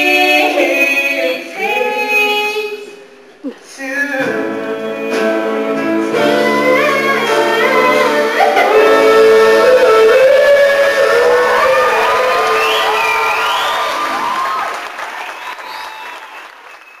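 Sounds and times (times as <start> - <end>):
audience applauding and cheering: 8.5 - 17.0
whistles and whoops: 10.0 - 17.0.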